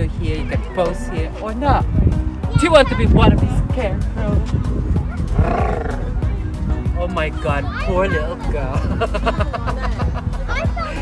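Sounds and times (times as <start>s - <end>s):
background music: 0.0s - 11.0s
short growling roar: 5.3s - 6.1s.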